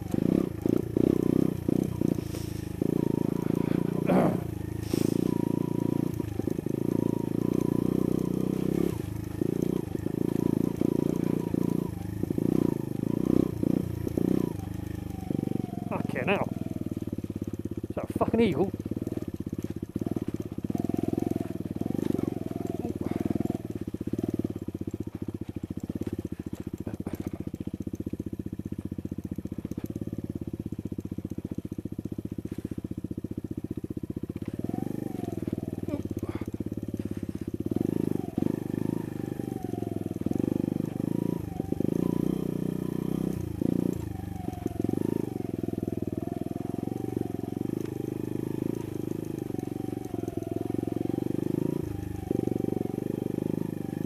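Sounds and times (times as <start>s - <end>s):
motorbike engine revving: 0.0s - 54.0s.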